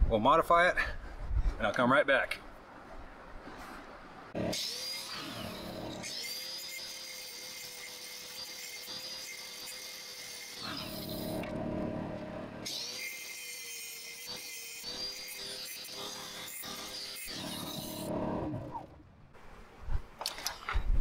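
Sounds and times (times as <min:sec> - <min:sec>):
grinder grinding metal: 0:04.4 - 0:18.3
angle grinder whining: 0:04.4 - 0:18.9.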